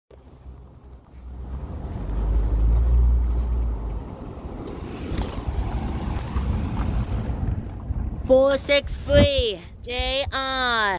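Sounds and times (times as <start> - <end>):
bus engine rumbling: 0.1 - 9.1.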